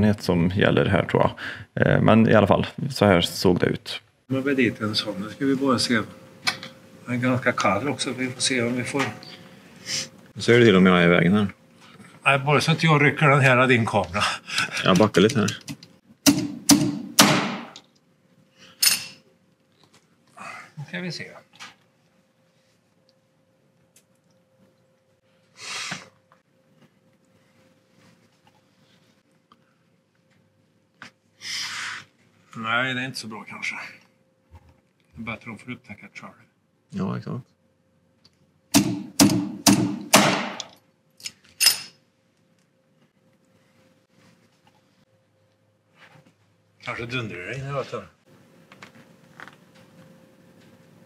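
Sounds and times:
slide hammer slamming: 0:16.3 - 0:17.8, 0:38.8 - 0:40.7.

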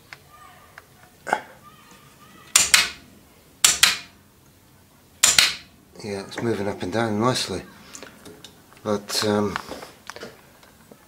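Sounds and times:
tape player mechanism clacking: 0:02.5 - 0:03.0.

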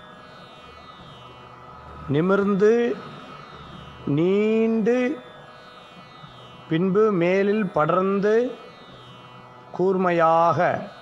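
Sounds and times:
man chanting: 0:02.1 - 0:03.1, 0:04.0 - 0:05.3, 0:06.7 - 0:08.7, 0:09.7 - 0:11.0.

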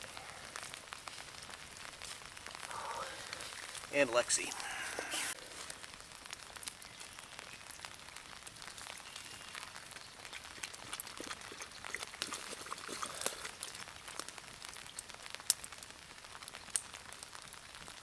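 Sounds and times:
campfire crackling and popping: 0:00.0 - 0:18.0
light rain on leaves: 0:00.0 - 0:18.0.

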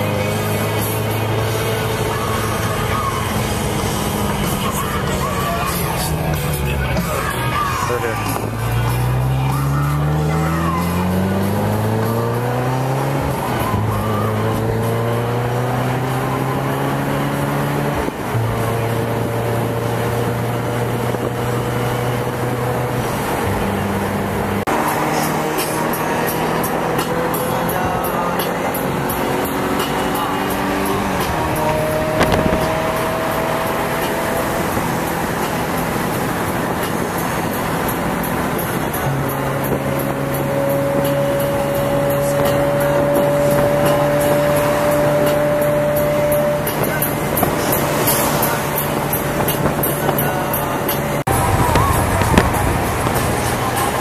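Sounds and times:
car engine accelerating: 0:00.0 - 0:54.0
road noise: 0:00.0 - 0:54.0.

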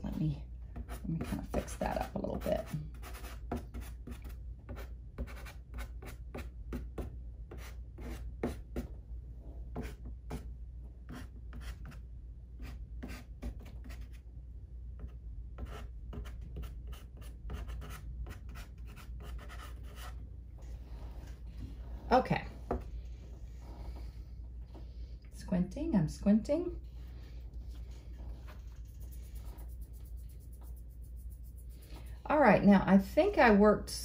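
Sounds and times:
pastel scratching on paper: 0:00.8 - 0:08.9, 0:28.2 - 0:32.1.

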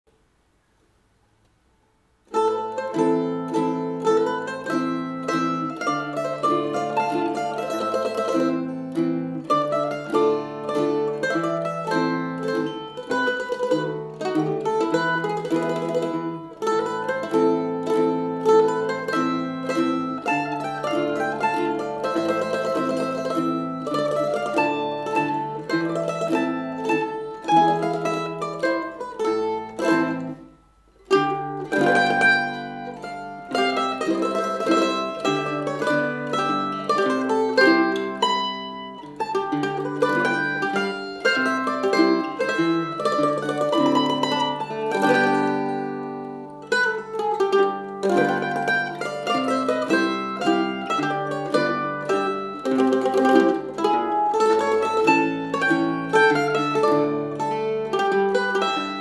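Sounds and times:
plucked mandolin melody: 0:02.2 - 0:59.0
tenor guitar low notes: 0:02.3 - 0:59.0.

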